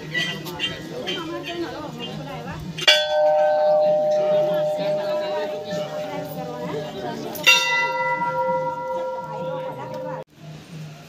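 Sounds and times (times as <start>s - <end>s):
large metal bell ringing: 2.9s - 10.3s.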